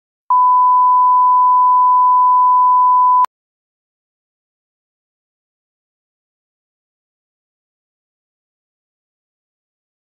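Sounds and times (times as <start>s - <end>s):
steady test tone beep: 0.3s - 3.3s.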